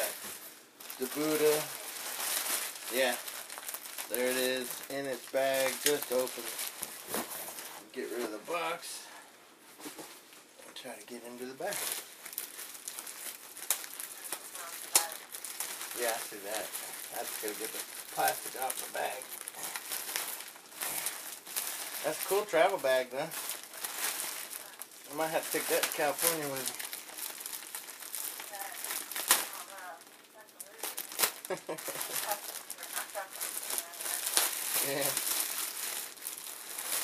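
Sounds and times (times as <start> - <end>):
plastic bag crinkling: 0.0 - 8.8, 10.2 - 37.0.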